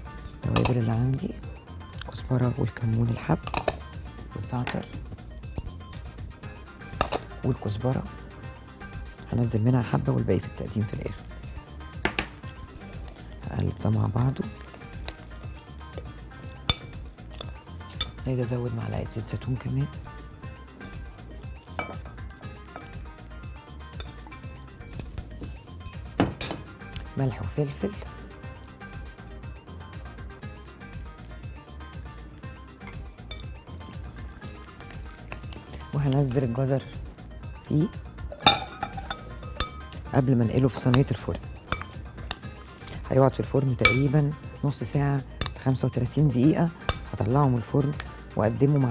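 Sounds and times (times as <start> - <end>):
metal spoon stirring in glass bowl: 0.0 - 1.4, 2.9 - 4.0, 5.4 - 7.4, 11.1 - 23.2, 23.9 - 26.6, 32.8 - 36.7, 37.5 - 44.4, 45.3 - 48.9
spoon clinking against glass: 0.0 - 2.3, 3.0 - 4.0, 5.2 - 7.4, 14.5 - 21.1, 21.7 - 23.2, 23.8 - 27.0, 32.8 - 36.7, 37.5 - 42.5, 43.8 - 44.4, 45.4 - 48.9
background music: 0.0 - 48.9.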